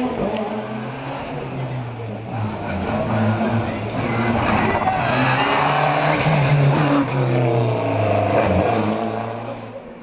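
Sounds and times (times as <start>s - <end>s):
rally car engine revving past: 0.0s - 9.8s.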